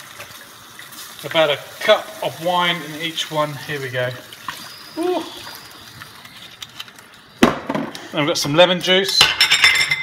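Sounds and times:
hard object set down on bench: 0:07.4 - 0:08.0.

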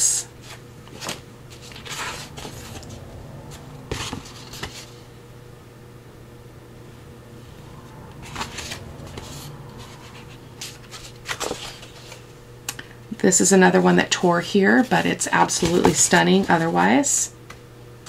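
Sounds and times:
steady low hum: 0:00.0 - 0:18.0
paper rustling and crinkling: 0:00.4 - 0:03.0, 0:03.9 - 0:05.0, 0:08.2 - 0:12.3.

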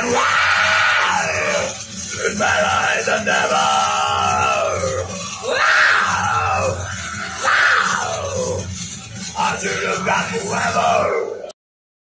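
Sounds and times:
man screaming: 0:00.0 - 0:01.8, 0:02.4 - 0:08.6.

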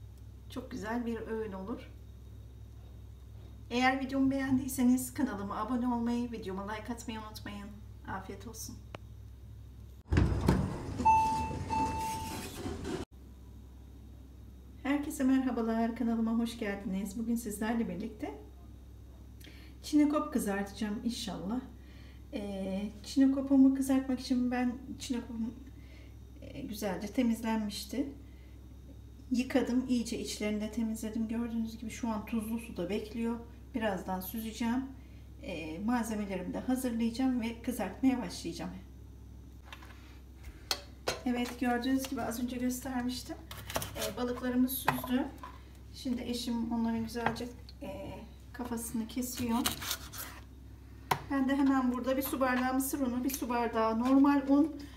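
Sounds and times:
steady low hum: 0:00.0 - 0:11.8, 0:12.4 - 0:54.9.

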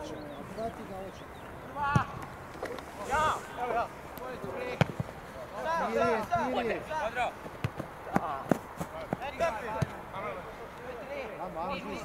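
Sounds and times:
football thuds: 0:01.9 - 0:02.3, 0:04.4 - 0:05.2, 0:07.4 - 0:10.0.

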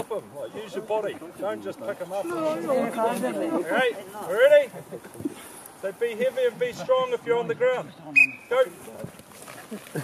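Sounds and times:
whistle blast: 0:08.2 - 0:08.5.

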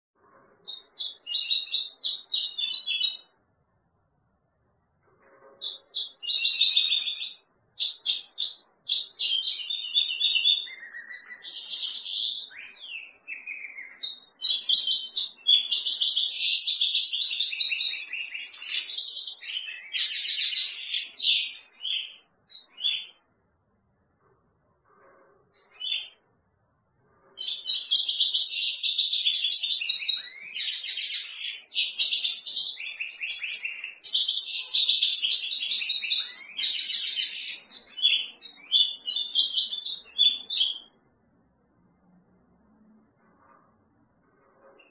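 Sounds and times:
bird twittering and trilling: 0:00.4 - 0:03.4, 0:05.1 - 0:23.3, 0:24.2 - 0:26.3, 0:27.1 - 0:41.1, 0:44.4 - 0:44.9.

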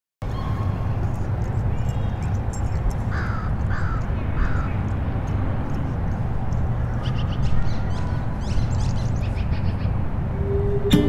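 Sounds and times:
low outdoor rumble: 0:00.2 - 0:11.0.

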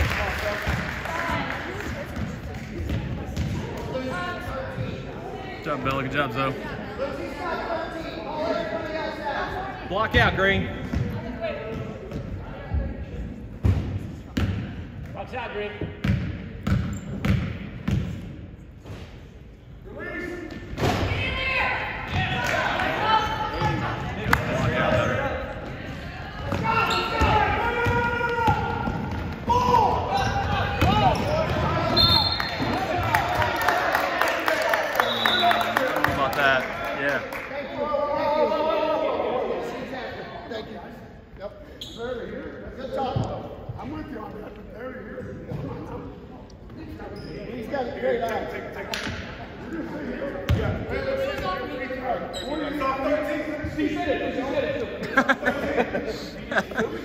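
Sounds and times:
indistinct shouting in a gym: 0:26.5 - 0:32.2.

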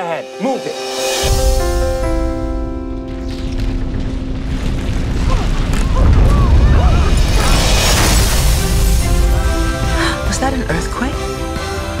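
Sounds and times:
orchestral music: 0:00.0 - 0:12.0.

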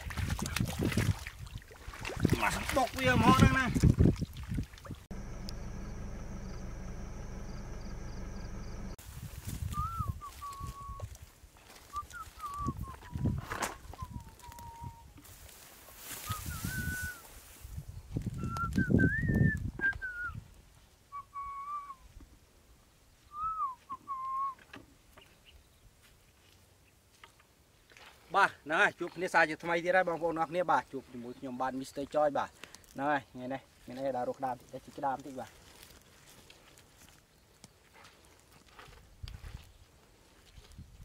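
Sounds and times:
rustles: 0:03.7 - 0:18.9, 0:32.4 - 0:41.0
steady hum: 0:05.1 - 0:09.0
sliding whistled notes: 0:09.7 - 0:11.1, 0:16.2 - 0:17.2.

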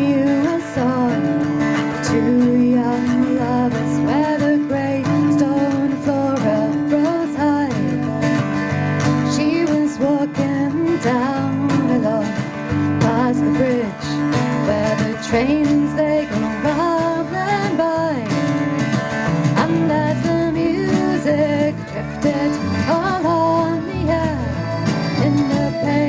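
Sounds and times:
accordion: 0:00.0 - 0:26.0
strummed acoustic guitar: 0:00.0 - 0:26.0
woman singing folk song: 0:00.0 - 0:26.0
wooden hand percussion: 0:00.0 - 0:26.0
electric bass: 0:10.5 - 0:26.0.

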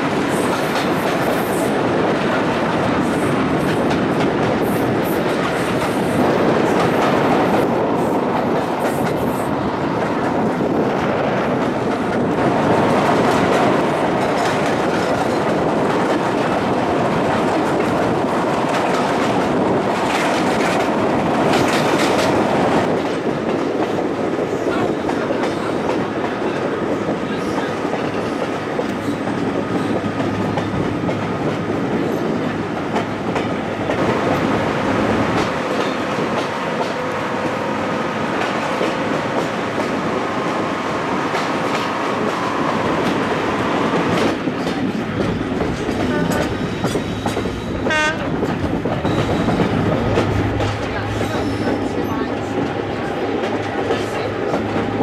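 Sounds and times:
train rolling noise: 0:00.0 - 0:55.0.

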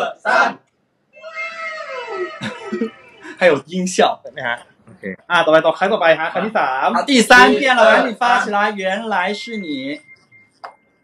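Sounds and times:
long high-pitched falling cry: 0:01.2 - 0:03.5.

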